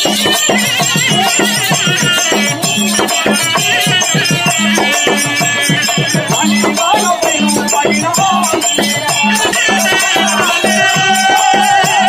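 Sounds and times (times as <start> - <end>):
drum strokes: 0.0 - 12.0.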